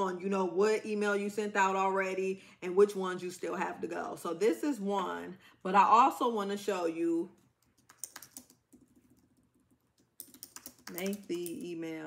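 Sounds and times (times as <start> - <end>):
computer keyboard typing: 7.7 - 11.6.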